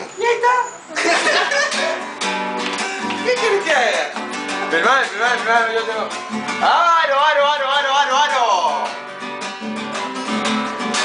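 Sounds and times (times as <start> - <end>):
nylon-string guitar strummed: 1.7 - 11.0.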